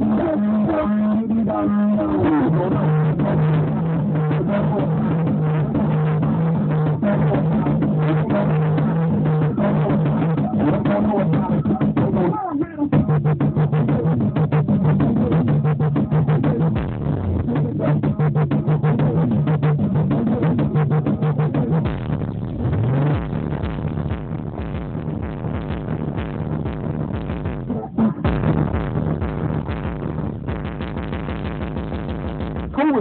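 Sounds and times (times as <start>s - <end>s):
electronic music with heavy bass: 0.0s - 33.0s.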